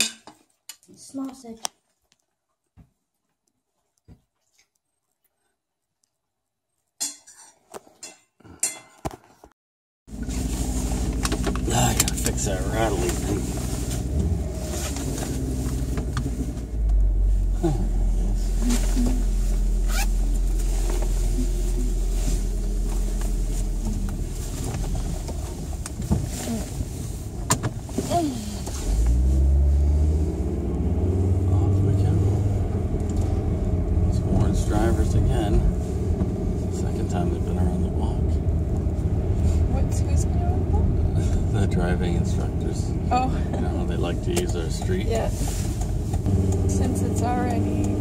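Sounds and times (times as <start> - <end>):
car engine and road rumble: 10.1 - 48.0.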